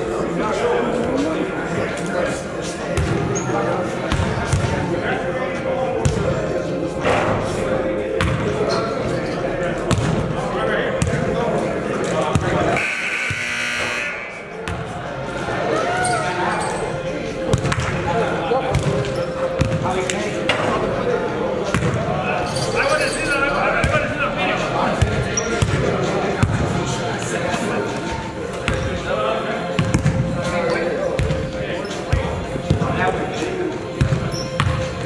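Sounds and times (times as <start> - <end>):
indistinct echoing voices: 0.0 - 35.0.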